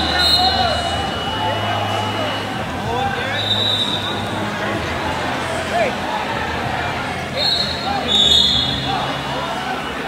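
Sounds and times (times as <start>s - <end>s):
high whistle blasts: 0.0s - 2.6s, 3.2s - 4.2s, 7.4s - 8.9s
crowd chatter: 0.0s - 10.0s.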